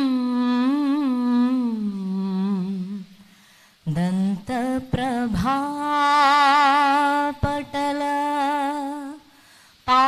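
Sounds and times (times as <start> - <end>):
person singing devotional melody: 0.0 - 10.0.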